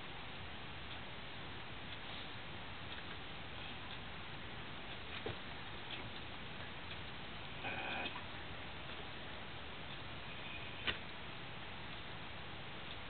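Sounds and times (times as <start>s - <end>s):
steady hiss: 0.0s - 13.0s.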